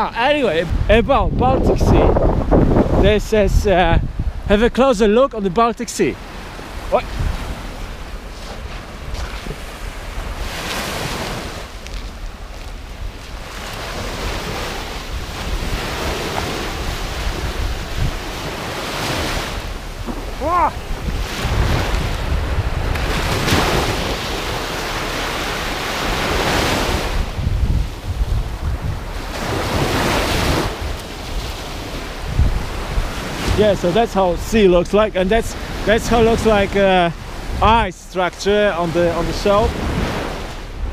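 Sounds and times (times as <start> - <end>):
wind buffeting microphone: 0.0 - 40.9.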